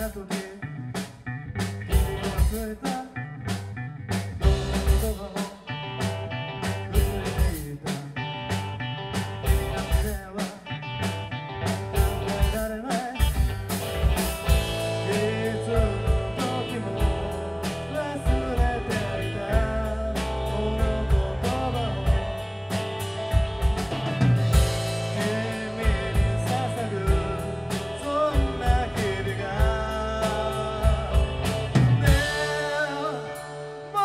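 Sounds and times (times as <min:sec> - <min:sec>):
person singing: 0:00.0 - 0:00.7, 0:02.3 - 0:03.3, 0:04.4 - 0:06.2, 0:06.9 - 0:08.3, 0:12.1 - 0:13.4, 0:14.4 - 0:23.0, 0:24.5 - 0:34.0
bass guitar: 0:00.0 - 0:34.0
drums steady beat: 0:00.0 - 0:34.0
electric guitar: 0:00.0 - 0:34.0
keyboard: 0:13.3 - 0:34.0.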